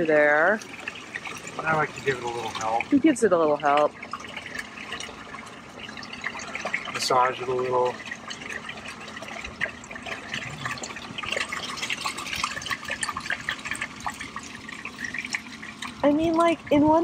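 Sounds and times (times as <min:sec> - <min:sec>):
waste water gurgling through hose: 0:00.0 - 0:17.0.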